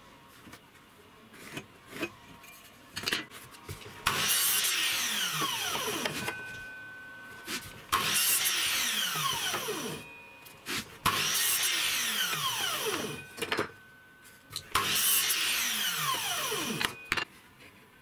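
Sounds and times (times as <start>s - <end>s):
mitre saw cutting wood: 8.0s - 10.0s, 11.1s - 13.2s, 14.8s - 16.9s.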